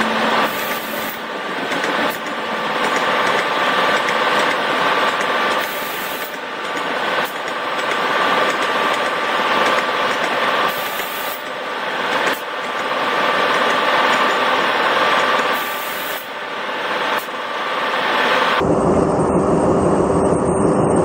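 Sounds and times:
thin high whine: 0.0s - 6.4s
rushing train rail noise: 0.0s - 18.8s
deep rumble: 18.6s - 21.0s.

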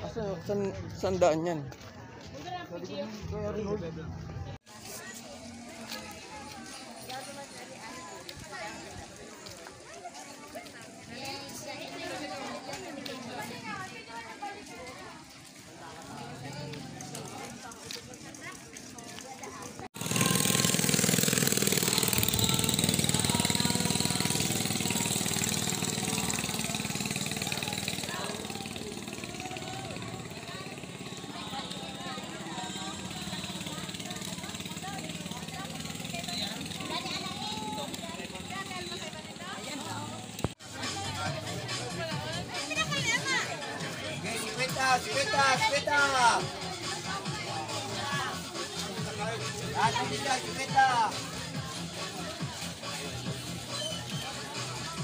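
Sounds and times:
crowd chatter: 0.0s - 55.0s
people talking: 1.7s - 55.0s
engine humming: 20.0s - 40.6s.

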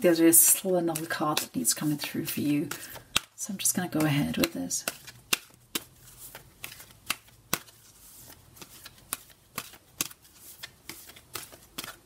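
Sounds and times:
cards snapping while shuffled: 0.8s - 2.1s, 2.7s - 12.0s
cards sliding: 0.9s - 12.0s.

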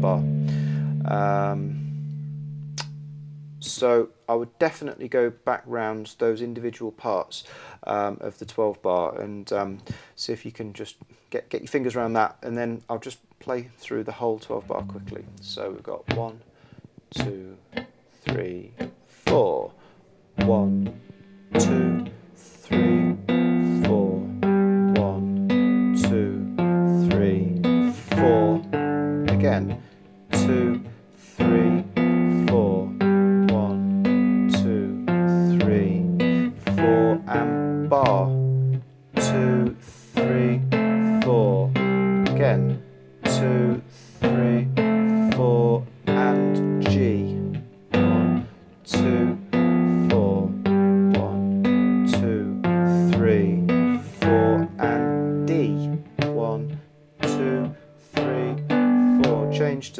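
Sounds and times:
guitar slides: 0.0s - 3.7s, 20.4s - 59.9s
fingerstyle blues guitar: 0.0s - 3.9s, 14.5s - 59.9s.

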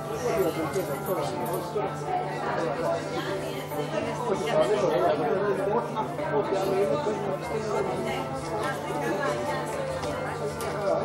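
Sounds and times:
murmur of overlapping conversation: 0.0s - 11.0s.

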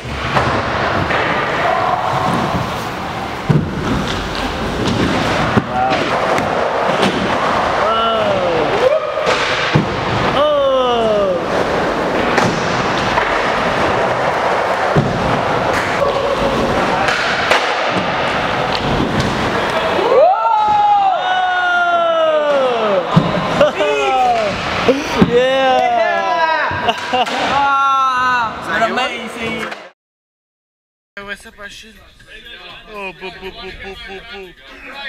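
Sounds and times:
inline skates rolling on wooden ramps: 0.0s - 27.2s
men yelling: 19.8s - 29.0s.

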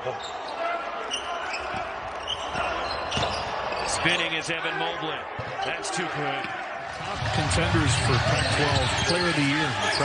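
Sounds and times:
faint court noise: 0.0s - 10.0s.

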